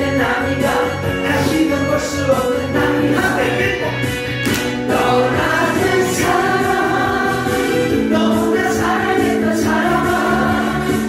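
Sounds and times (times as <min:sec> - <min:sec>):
karaoke backing track: 0:00.0 - 0:11.0.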